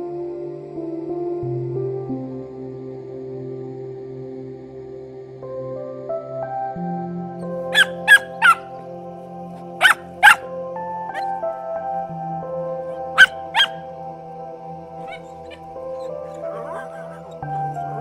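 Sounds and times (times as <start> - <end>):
soft piano music: 0.0 - 18.0
puppy yapping: 7.7 - 8.7, 9.6 - 10.5, 11.1 - 11.4, 12.8 - 13.8, 15.0 - 18.0.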